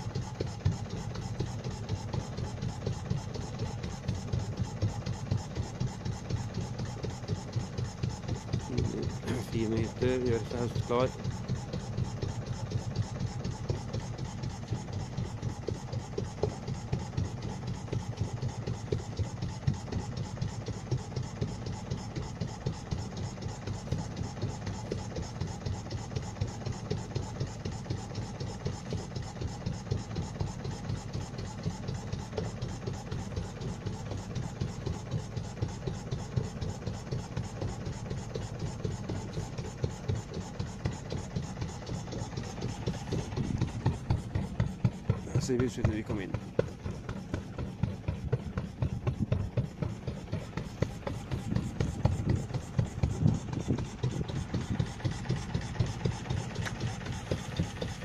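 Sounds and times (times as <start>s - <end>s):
motorboat engine chugging: 0.0s - 58.0s.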